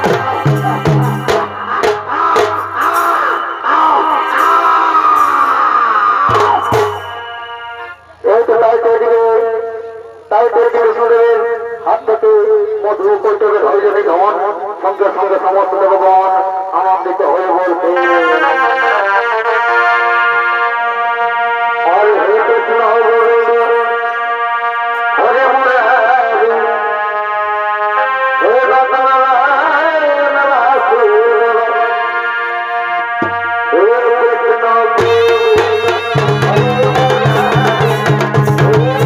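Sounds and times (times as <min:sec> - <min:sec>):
fast dense drumming: 0:00.0 - 0:03.4, 0:06.2 - 0:07.2, 0:35.0 - 0:39.0
steady held tones: 0:00.0 - 0:08.3, 0:32.9 - 0:33.9
wind instrument melody: 0:00.0 - 0:08.6, 0:17.6 - 0:39.0.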